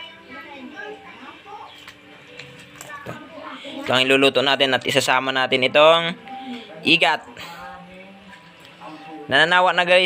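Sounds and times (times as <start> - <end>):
faint background voices: 0.0 - 4.5, 6.0 - 10.0
background music: 0.0 - 10.0.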